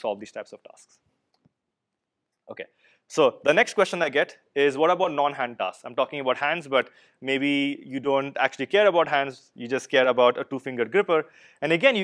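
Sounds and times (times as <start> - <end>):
man speaking: 0.0 - 1.0, 2.5 - 12.0.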